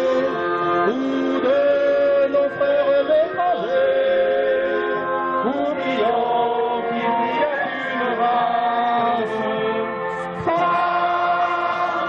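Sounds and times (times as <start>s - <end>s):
group singing without instruments: 0.0s - 12.0s.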